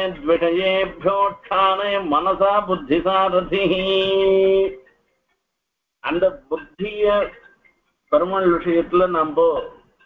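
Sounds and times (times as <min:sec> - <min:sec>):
man chanting melodically: 0:00.0 - 0:04.9, 0:06.0 - 0:07.4, 0:08.1 - 0:09.9.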